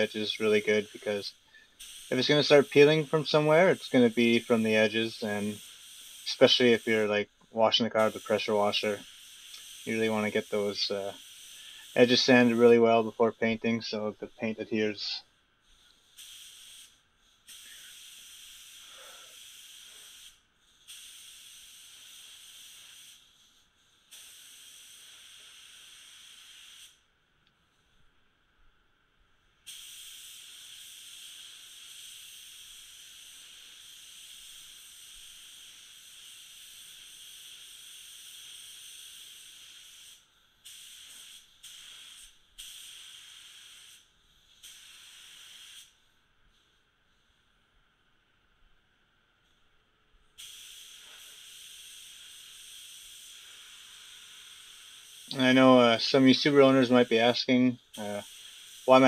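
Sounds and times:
spray gun hissing: 0.0s - 27.1s, 29.5s - 47.3s, 50.3s - 59.0s.

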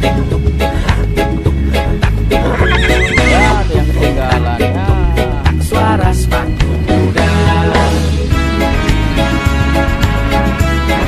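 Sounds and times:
reggae music: 0.0s - 11.0s
horse whinnying: 2.3s - 3.8s.

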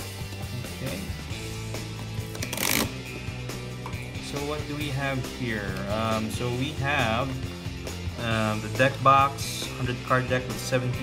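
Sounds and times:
background guitar music: 0.0s - 11.0s.

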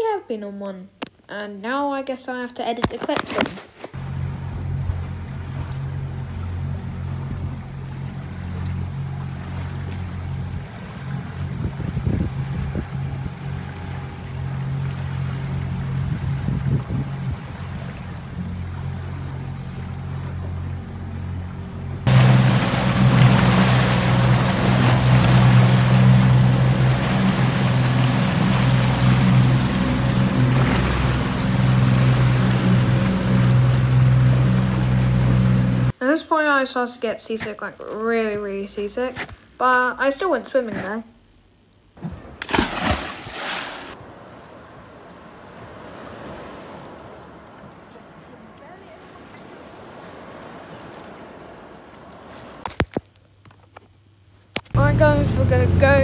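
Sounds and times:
churning water: 2.9s - 36.0s, 42.0s - 52.9s, 54.6s - 56.0s
motorboat engine droning: 4.0s - 36.0s, 43.9s - 52.7s, 53.4s - 56.0s
wind on microphone: 10.5s - 14.4s, 15.6s - 18.6s.

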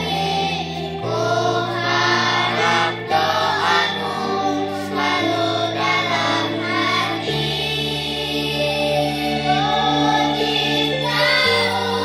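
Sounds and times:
children singing in chorus: 0.0s - 12.0s.

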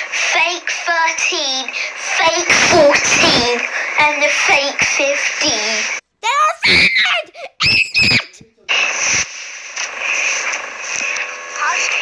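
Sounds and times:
steady hiss: 0.0s - 6.0s
high-pitched wordless cries: 0.3s - 8.5s.

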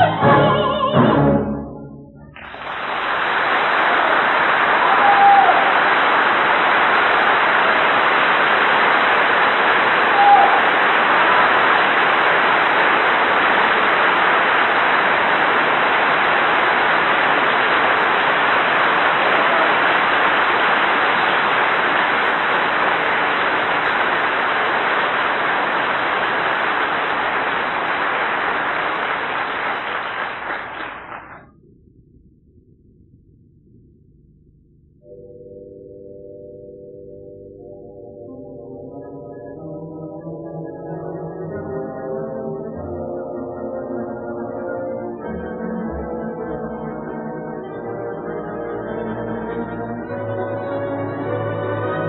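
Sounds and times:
audience applauding: 2.4s - 31.5s
brief shouts: 4.8s - 5.7s, 10.1s - 10.8s.

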